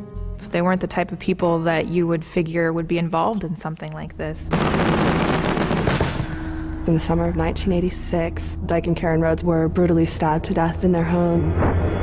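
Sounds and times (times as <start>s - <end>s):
crackling burst of pops: 4.5s - 6.4s
low steady tone: 6.2s - 12.0s.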